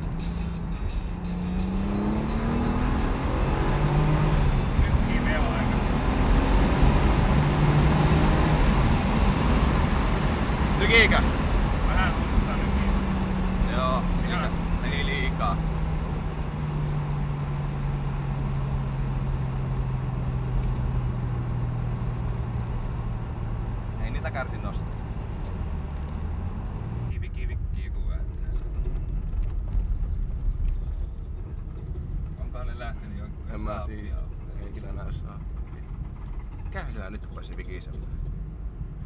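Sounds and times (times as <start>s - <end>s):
car engine revs falling: 0.0s - 27.2s.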